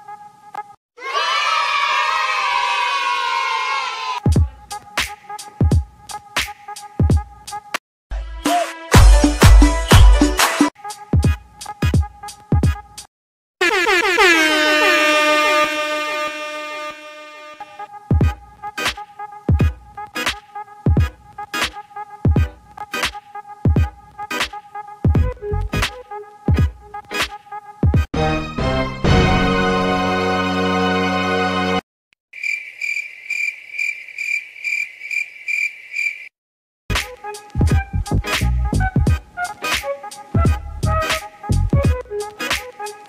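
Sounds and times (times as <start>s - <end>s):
music: 4.2s - 13.1s, 17.6s - 31.8s, 36.9s - 43.0s
pulsing air horn blast: 13.6s - 17.9s
cricket chirping: 32.4s - 36.3s.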